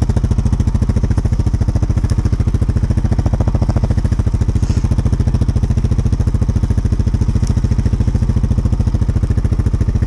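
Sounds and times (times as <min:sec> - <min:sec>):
atv engine running: 0:00.0 - 0:10.0.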